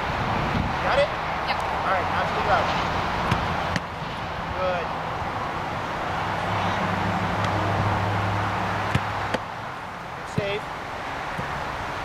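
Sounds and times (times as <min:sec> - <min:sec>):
outdoor background noise: 0:00.0 - 0:12.0
ball kicked with a thud: 0:08.9 - 0:09.4, 0:10.3 - 0:10.6.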